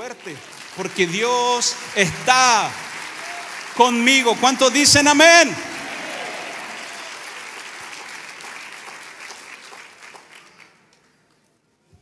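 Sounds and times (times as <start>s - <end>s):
congregation applauding: 0.0s - 11.4s.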